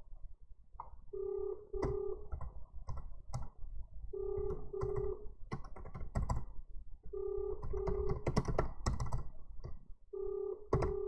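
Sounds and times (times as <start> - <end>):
phone ringback tone: 1.1 - 2.3, 4.2 - 5.3, 7.1 - 8.2, 10.2 - 11.0
keyboard typing: 1.2 - 3.5, 4.2 - 6.5, 7.2 - 11.0.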